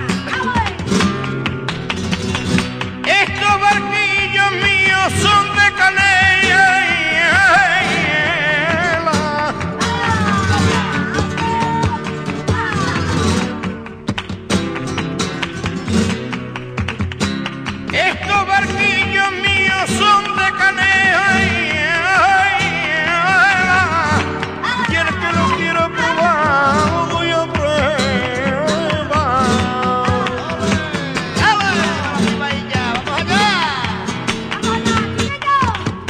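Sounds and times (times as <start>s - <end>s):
flamenco guitar playing: 0.0s - 36.0s.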